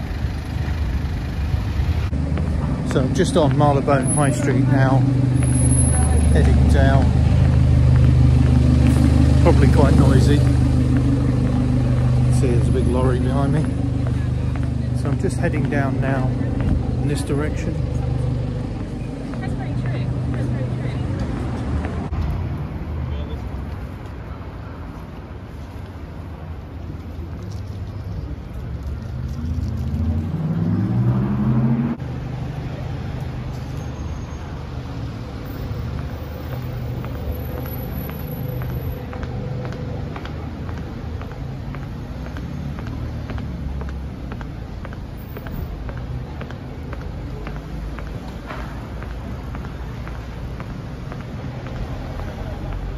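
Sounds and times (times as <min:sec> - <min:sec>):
traffic rumble: 0:00.0 - 0:52.9
engine accelerating: 0:00.3 - 0:22.1, 0:29.2 - 0:33.4.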